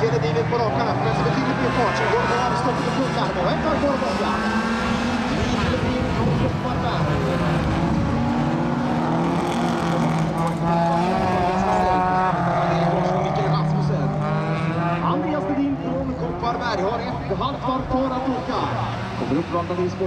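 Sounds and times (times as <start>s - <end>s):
racing car engines: 0.0s - 20.0s.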